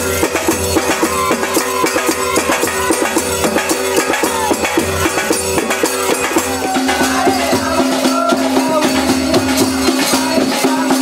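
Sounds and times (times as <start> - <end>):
barrel drum beating: 0.0 - 11.0.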